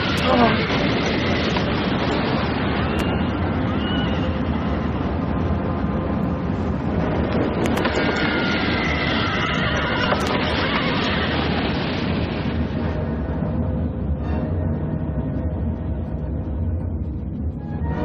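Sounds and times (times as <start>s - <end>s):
loud steady rushing roar: 0.0s - 18.0s.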